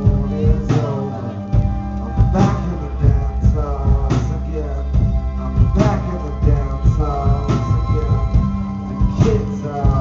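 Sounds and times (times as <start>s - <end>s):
drum kit beat: 0.0s - 10.0s
electric bass: 0.0s - 10.0s
keyboard: 0.0s - 10.0s.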